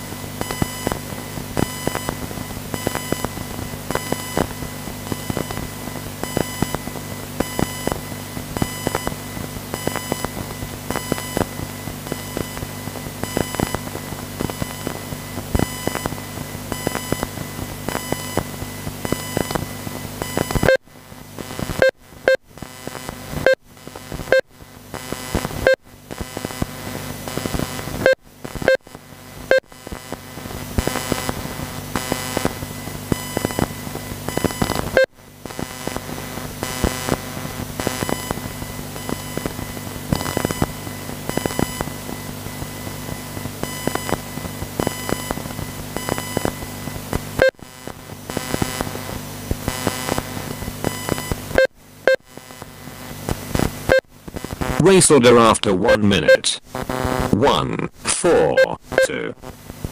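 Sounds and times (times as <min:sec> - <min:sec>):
steady hum: 0:00.0 - 0:59.9.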